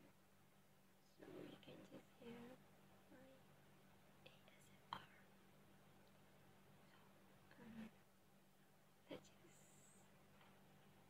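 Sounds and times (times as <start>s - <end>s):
faint steady hum: 0.0s - 11.0s
woman whispering: 1.1s - 3.4s, 4.3s - 5.3s, 7.5s - 8.0s, 9.1s - 10.1s.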